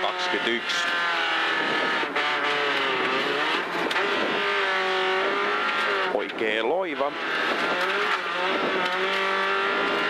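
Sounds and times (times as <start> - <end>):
rally car engine running hard: 0.0 - 10.0.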